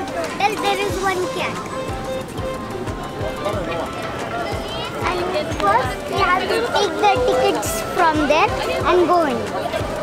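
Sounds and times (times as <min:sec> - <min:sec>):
crowd talking: 0:00.0 - 0:10.0
regular low thuds: 0:00.0 - 0:10.0.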